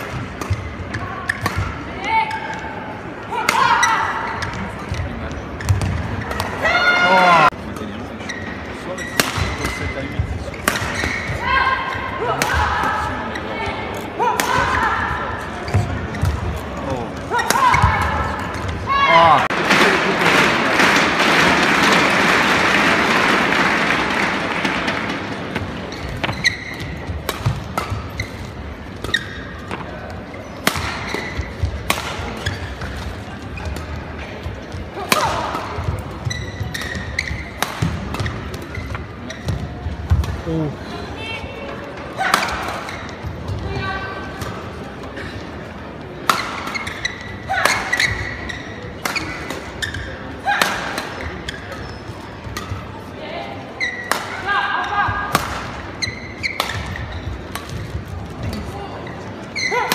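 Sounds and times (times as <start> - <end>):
rackets hitting shuttlecock: 0.0 - 1.8, 9.1 - 11.4, 24.6 - 34.0, 35.0 - 40.4, 46.2 - 53.0, 53.8 - 58.7
crowd noise: 0.0 - 59.9.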